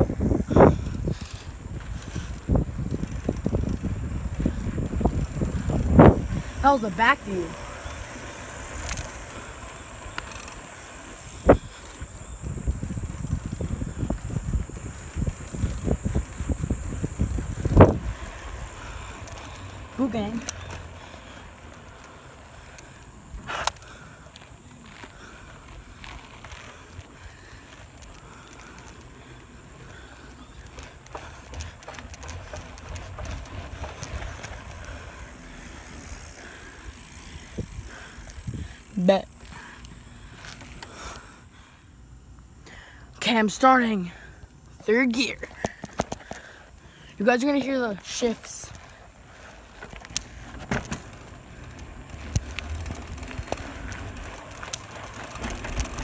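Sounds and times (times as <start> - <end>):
bike tyre and wind rumble: 0.0 - 56.0
bike clicks and knocks: 0.2 - 6.4, 7.8 - 38.7, 45.4 - 46.7, 47.4 - 56.0.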